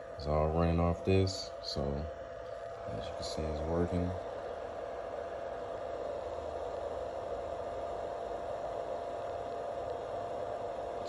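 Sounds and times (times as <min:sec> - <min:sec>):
small cooling fan whirring: 0:00.0 - 0:11.0.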